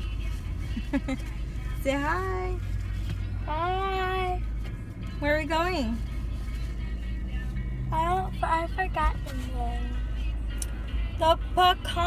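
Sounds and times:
car cabin rumble: 0.0 - 12.0
music playing: 0.0 - 12.0.

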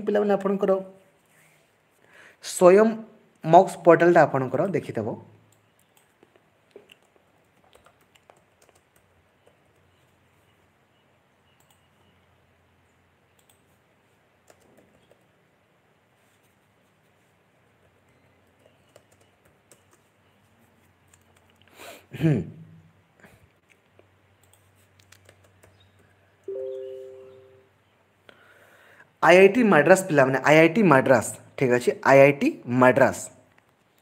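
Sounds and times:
soft faint clicks: 11.5 - 12.1, 13.3 - 13.7.

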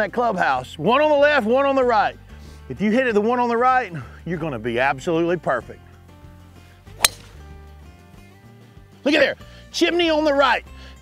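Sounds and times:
soft background music: 0.0 - 11.0
golf club striking ball: 6.9 - 7.6.

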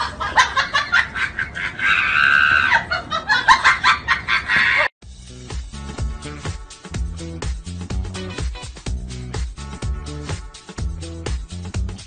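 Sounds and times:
music with a beat: 5.0 - 12.0.

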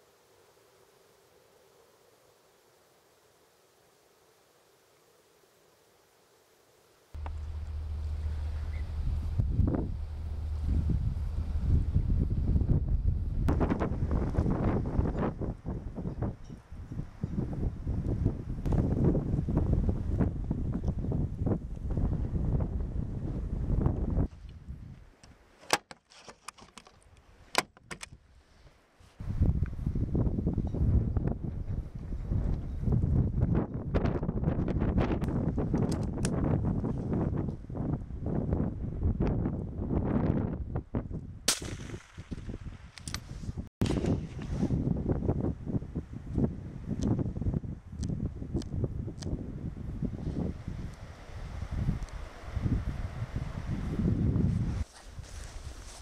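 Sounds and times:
strong wind buffeting microphone: 7.2 - 25.0, 29.2 - 56.0
rifle shots: 41.5 - 42.8.

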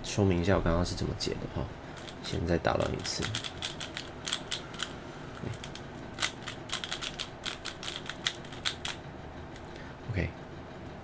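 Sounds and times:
puzzle cube clicking as turned: 2.9 - 9.0.

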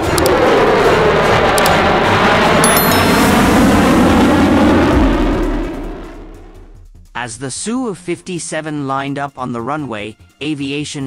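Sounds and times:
fighter jet engine roar: 0.0 - 6.7.

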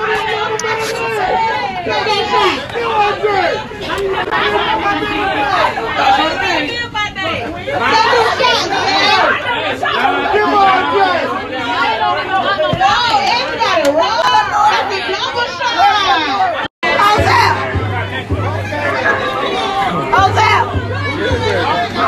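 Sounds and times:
crowd chatter: 0.0 - 22.0.

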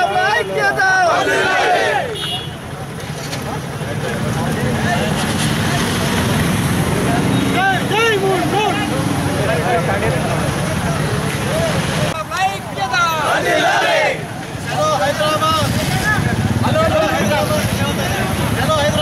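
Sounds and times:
men shouting: 0.0 - 2.2, 7.5 - 10.0, 12.5 - 17.8
motorcycle engines droning: 2.6 - 12.3, 13.1 - 19.0.

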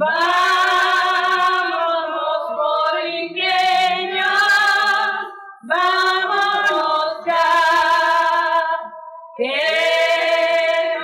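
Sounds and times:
women singing unaccompanied: 0.0 - 11.0.

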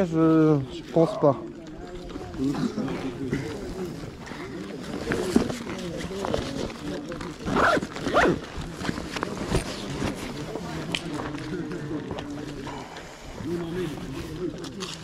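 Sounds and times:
backpack zip pulled shut: 7.4 - 8.5.

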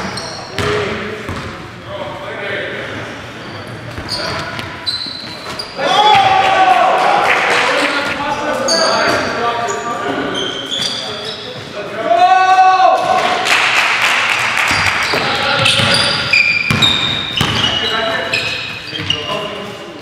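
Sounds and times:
sneaker squeaks: 0.0 - 2.0, 3.2 - 6.3, 7.7 - 11.8, 14.7 - 20.0
players' voices echoing: 0.0 - 20.0
basketball bouncing on gym floor: 0.6 - 1.6, 14.7 - 17.8.

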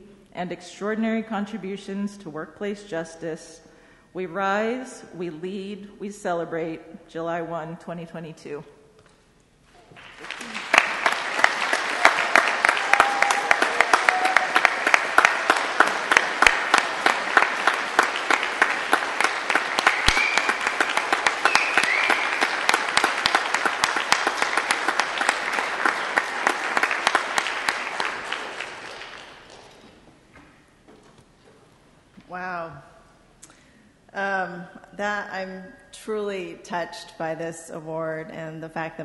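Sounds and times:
audience applauding: 9.8 - 30.0.

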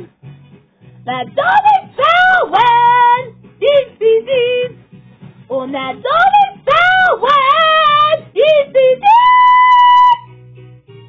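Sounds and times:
christmas pop music: 0.0 - 11.0.

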